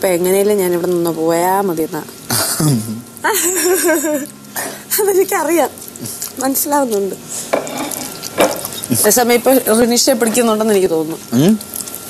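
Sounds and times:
woman speaking: 0.0 - 2.1, 4.9 - 5.8, 6.4 - 7.2, 8.9 - 11.3.

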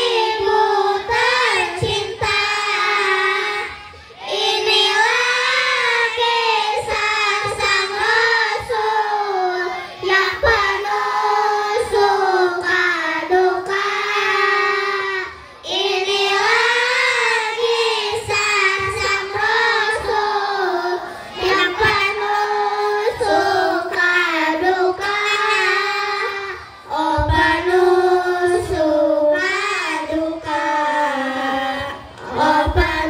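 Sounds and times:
children singing in unison: 0.0 - 33.0.

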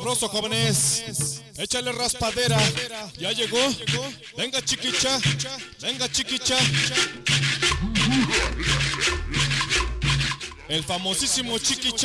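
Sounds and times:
cumbia music: 3.2 - 12.0
rasping scraper rhythm: 3.2 - 12.0
bass line: 7.7 - 10.9.

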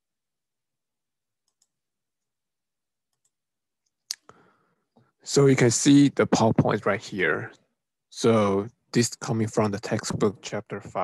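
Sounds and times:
computer mouse clicks: 1.4 - 1.7.

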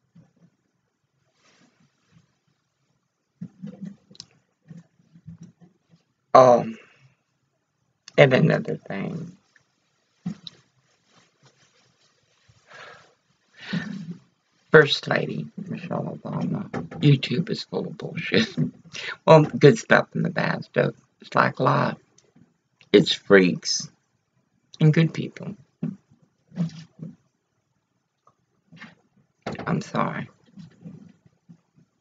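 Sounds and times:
rough voiced sigh: 19.0 - 19.3.

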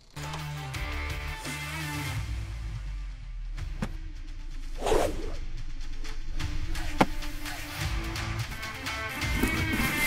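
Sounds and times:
short whoosh: 4.8 - 5.4.

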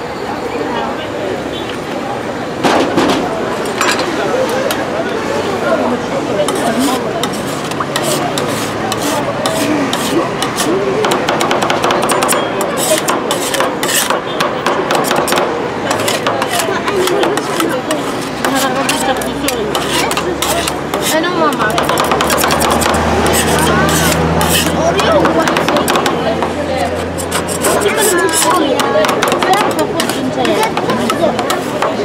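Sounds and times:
metal spatulas chopping and scraping: 6.4 - 32.0.

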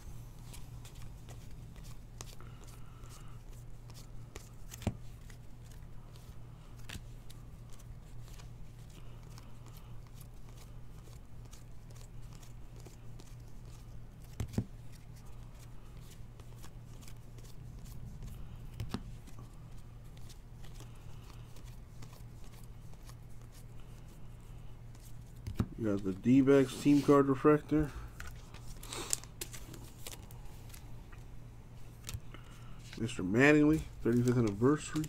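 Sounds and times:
steady low hum: 0.0 - 35.0
cards clicking and rustling: 0.4 - 31.2, 31.8 - 35.0.

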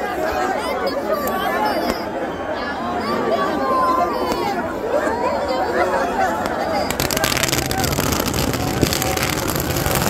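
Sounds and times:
fireworks crackling and popping: 6.3 - 10.0.

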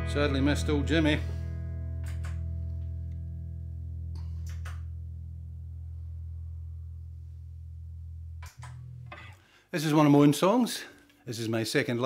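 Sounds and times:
picked guitar notes: 0.0 - 5.7
electric guitar chord ringing: 0.0 - 6.8.

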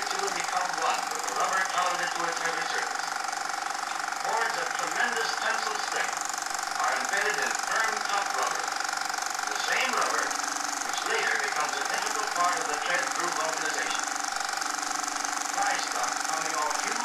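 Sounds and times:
constant hiss: 0.0 - 17.0
steady hum: 0.0 - 17.0
muffled indistinct talking: 6.8 - 8.7, 15.6 - 17.0.

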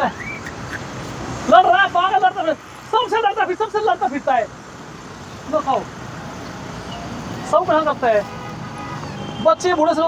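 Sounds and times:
faint outdoor background noise: 0.0 - 10.0
man speaking: 1.4 - 4.6, 5.4 - 6.0, 7.4 - 8.3.

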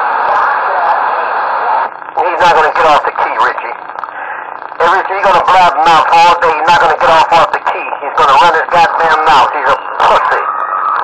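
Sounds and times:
static hiss: 0.0 - 11.0
voices over radio speaker: 0.0 - 11.0.

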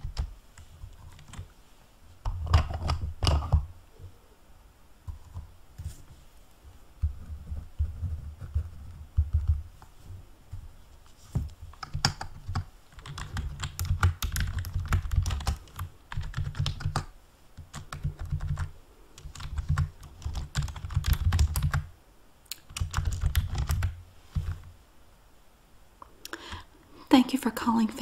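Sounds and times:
fast keyboard typing: 0.0 - 1.5, 2.3 - 3.6, 7.0 - 9.6, 11.7 - 21.9, 22.6 - 24.6.

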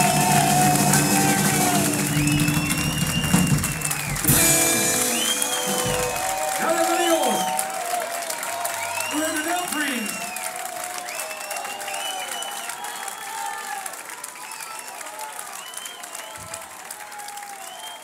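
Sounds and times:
voices shouting: 0.0 - 3.1
audience applauding: 0.0 - 18.0.

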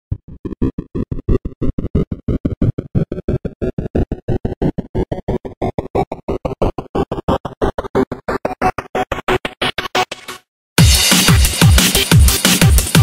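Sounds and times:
electronic dance track stutter: 0.1 - 13.0.

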